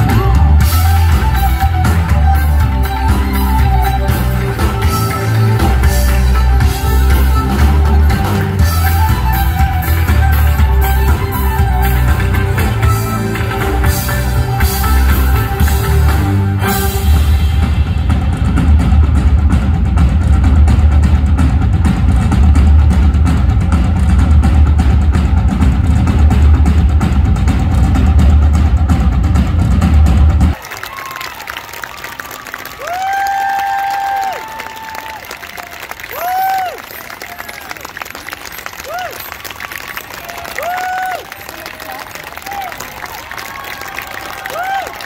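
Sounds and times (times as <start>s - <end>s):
audience applause and cheering: 0.0s - 22.2s, 27.0s - 45.0s
loud live music with drums: 0.0s - 30.8s, 32.1s - 45.0s
whooping shouts: 30.6s - 37.8s, 40.1s - 45.0s.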